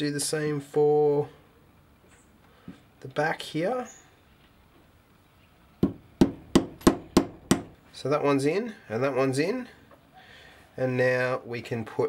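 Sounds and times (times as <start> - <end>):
hammer tapping metal: 5.8 - 7.8.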